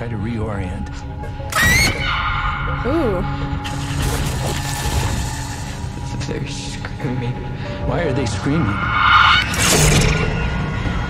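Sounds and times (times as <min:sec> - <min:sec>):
low droning score: 0:00.0 - 0:11.0
loud rising shriek: 0:01.5 - 0:04.0, 0:07.9 - 0:11.0
sustained high tones: 0:01.5 - 0:04.0, 0:07.5 - 0:11.0.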